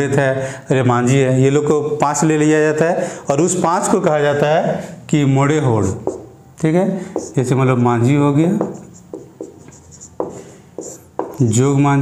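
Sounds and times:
marker pen writing on whiteboard: 0:05.8 - 0:06.4, 0:07.0 - 0:11.7.

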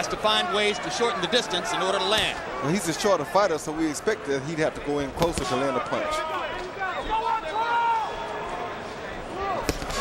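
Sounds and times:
crowd shouts: 0:00.0 - 0:03.5, 0:05.4 - 0:10.0
crowd hum of voices: 0:00.0 - 0:10.0.

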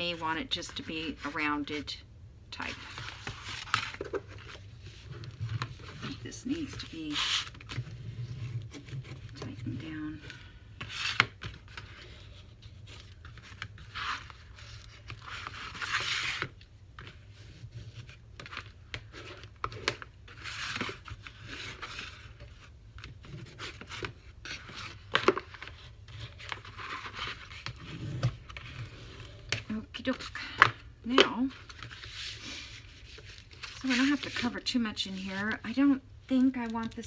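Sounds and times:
paper scraping with folding tool: 0:31.6 - 0:35.6.

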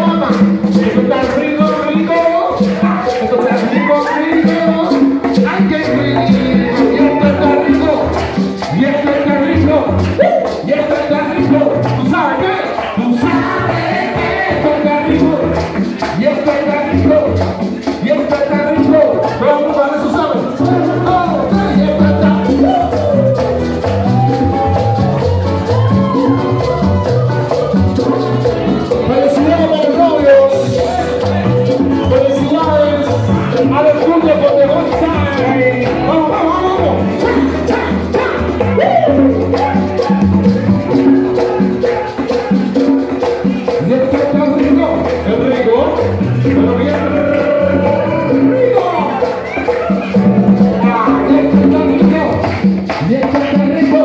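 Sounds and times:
bass line: 0:00.0 - 0:54.0
keyboard: 0:00.0 - 0:54.0
percussion beat: 0:00.0 - 0:54.0
salsa band playing: 0:00.0 - 0:54.0.

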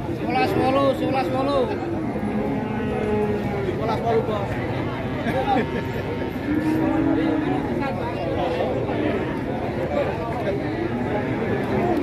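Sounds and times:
cow mooing: 0:01.9 - 0:03.8.

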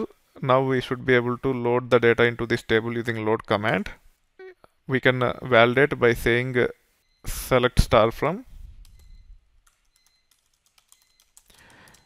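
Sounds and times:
keyboard typing: 0:08.8 - 0:12.0.

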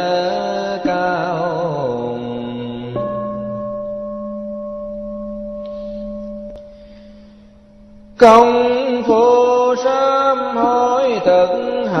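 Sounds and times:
bowl bell ringing: 0:03.0 - 0:08.9.

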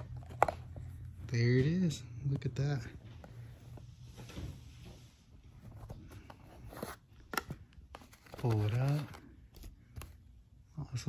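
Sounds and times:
cardboard rustling and scraping: 0:00.0 - 0:01.9, 0:02.7 - 0:10.2.

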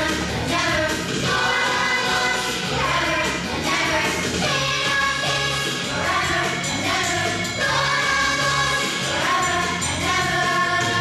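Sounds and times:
children's choir singing: 0:00.0 - 0:11.0
instrumental backing music: 0:00.0 - 0:11.0.

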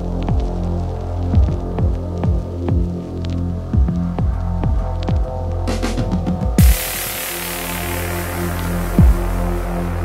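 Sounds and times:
deep bass drone: 0:00.0 - 0:10.0
kick drums dropping in pitch: 0:09.0 - 0:09.4.

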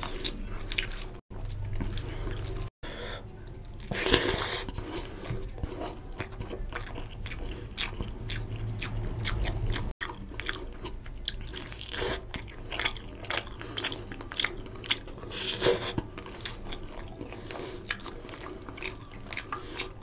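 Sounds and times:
wet chewing mouth clicks: 0:03.4 - 0:20.0.

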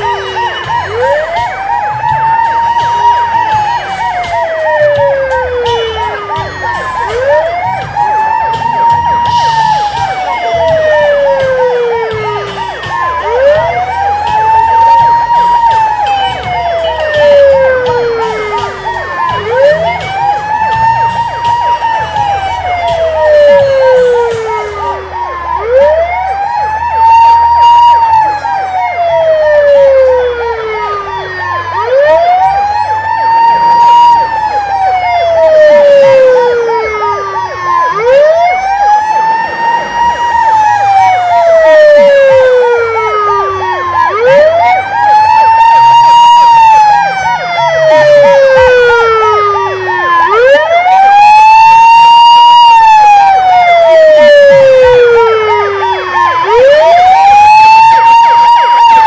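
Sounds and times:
ambulance siren wailing: 0:00.0 - 0:59.0.

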